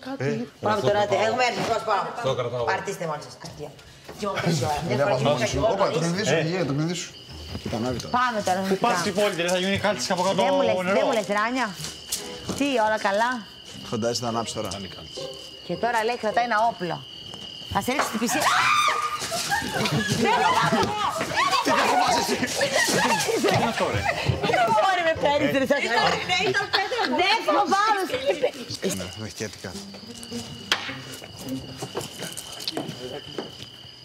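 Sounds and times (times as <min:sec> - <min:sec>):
crickets trilling: 0:00.0 - 0:34.0
people's voices: 0:17.7 - 0:33.6.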